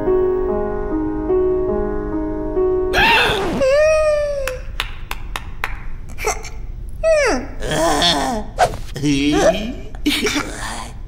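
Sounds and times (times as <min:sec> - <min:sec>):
cartoon character falling squeals: 0:03.0 - 0:04.4.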